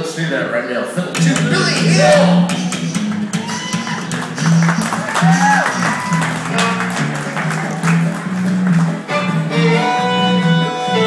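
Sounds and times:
upright bass line: 1.1 - 11.0
strummed acoustic guitar: 1.2 - 11.0
fiddle playing: 3.0 - 11.0.

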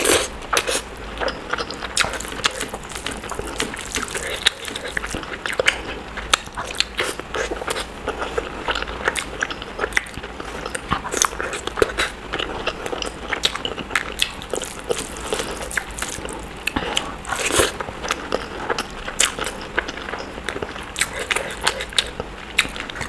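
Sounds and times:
person chewing food: 0.0 - 23.0.

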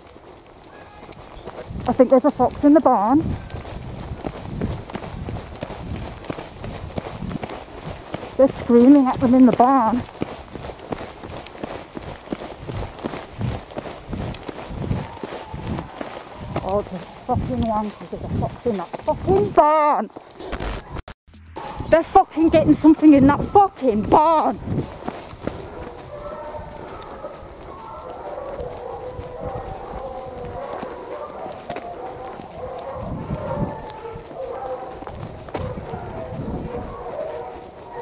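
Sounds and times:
footsteps running on tarmac: 0.0 - 20.6, 21.6 - 38.0
hounds howling: 14.8 - 17.2, 23.1 - 38.0.

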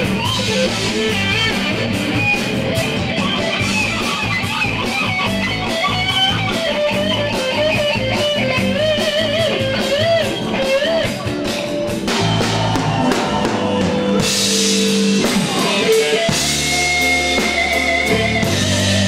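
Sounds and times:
bass guitar: 0.0 - 19.0
drums with steady beat: 0.0 - 19.0
electric guitar solo: 0.0 - 19.0.

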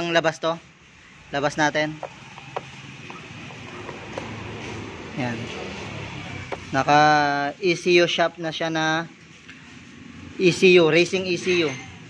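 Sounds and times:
handling noises: 1.8 - 6.9.

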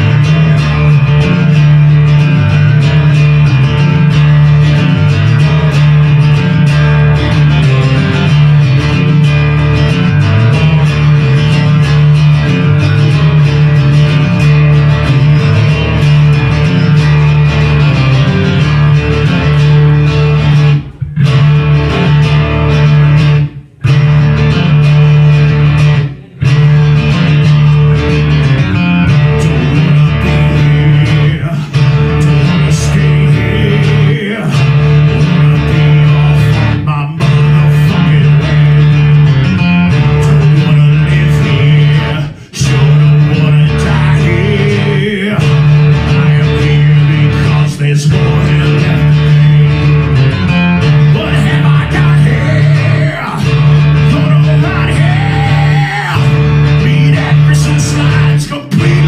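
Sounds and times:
amplified guitar: 0.0 - 59.0
electric bass: 0.0 - 59.0.

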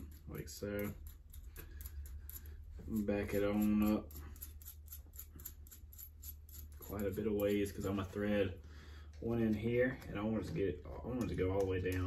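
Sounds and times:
small metallic clicks of nut threading: 0.0 - 7.6.

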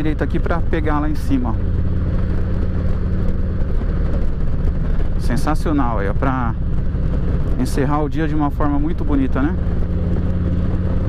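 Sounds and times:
motorcycle engine cruising: 0.0 - 11.0
road noise: 0.0 - 11.0
wind rushing: 0.0 - 11.0.

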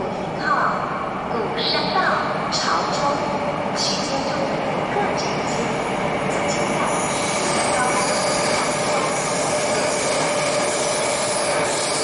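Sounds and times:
train rail rumble: 1.0 - 12.0.

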